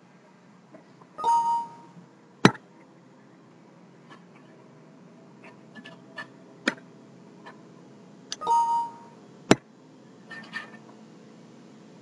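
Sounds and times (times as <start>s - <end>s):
short electronic chime: 1.2s - 1.9s, 8.4s - 9.1s.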